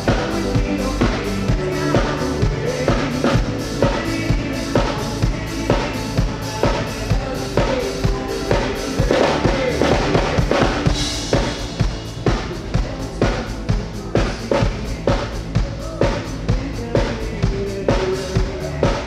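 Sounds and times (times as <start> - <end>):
drum kit beat: 0.0 - 19.0
electronic pop band playing: 0.0 - 19.0.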